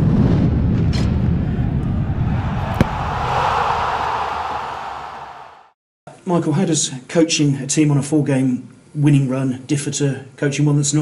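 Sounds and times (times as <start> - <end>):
deep rumbling swell: 1.2 - 4.4
sharp hit: 2.6 - 3.6.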